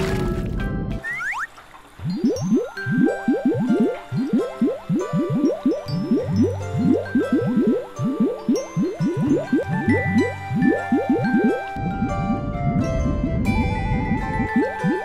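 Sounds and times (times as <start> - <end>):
cartoon bubble bloops: 1.0 - 15.0
background music: 2.0 - 15.0.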